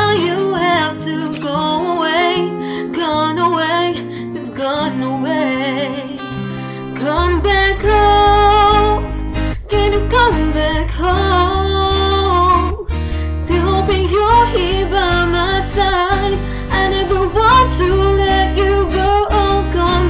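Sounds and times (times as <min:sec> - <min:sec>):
acoustic guitar: 0:00.0 - 0:20.0
person singing: 0:00.0 - 0:20.0
deep bass: 0:07.0 - 0:20.0.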